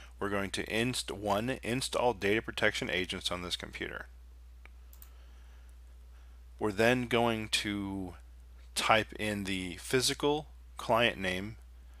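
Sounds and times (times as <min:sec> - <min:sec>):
steady low hum: 0:00.0 - 0:12.0
faint ticks: 0:04.6 - 0:05.2
computer key click: 0:04.9 - 0:05.1.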